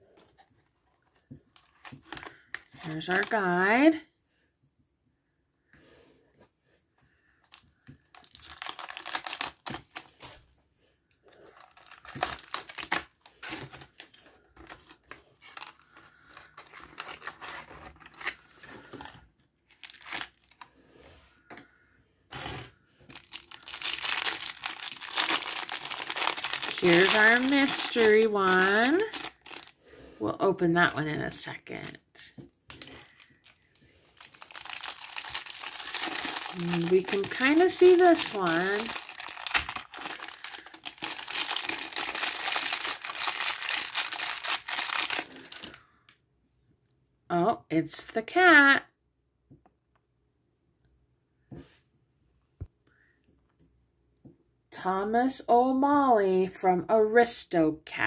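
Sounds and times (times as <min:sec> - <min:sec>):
plastic packaging crinkling and tearing: 0:00.9 - 0:03.4, 0:07.4 - 0:10.4, 0:11.4 - 0:20.7, 0:22.4 - 0:29.8, 0:32.7 - 0:45.8.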